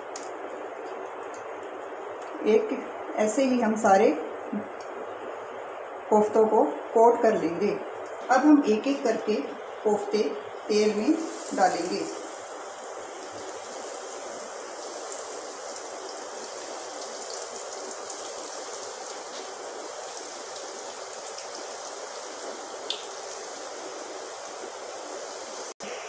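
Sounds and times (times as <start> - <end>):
food deep-frying in hot oil: 7.9 - 26.0.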